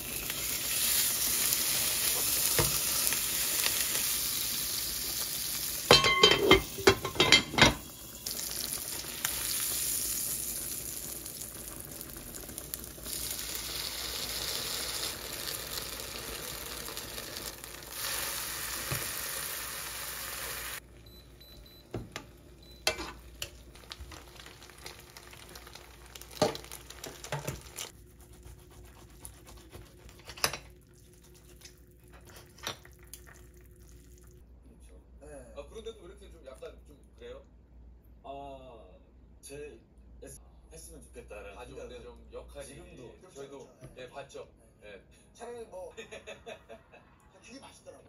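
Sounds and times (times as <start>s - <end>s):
food sizzling in frying pan: 0.0s - 20.8s, 21.9s - 28.0s
utensils clinking on cookware: 5.9s - 7.9s, 22.8s - 23.6s.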